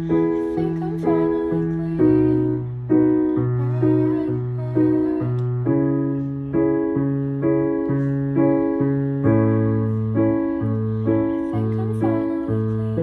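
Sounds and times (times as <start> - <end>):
digital piano chords: 0.0 - 13.0.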